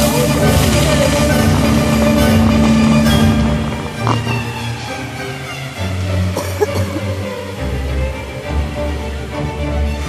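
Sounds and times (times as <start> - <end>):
music over loudspeakers: 0.0 - 5.2
fountain jets rushing hiss: 0.0 - 10.0.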